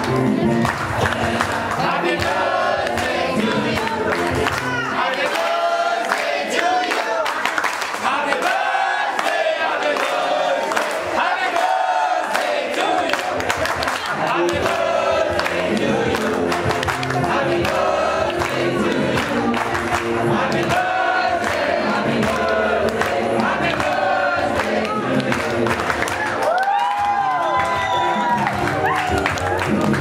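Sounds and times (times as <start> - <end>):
people clapping: 0.0 - 30.0
group singing: 0.2 - 26.4.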